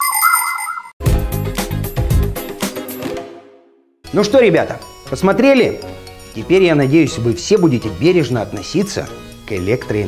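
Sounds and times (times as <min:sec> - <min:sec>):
electronic jingle of warbling beeps: 0:00.0 - 0:01.0.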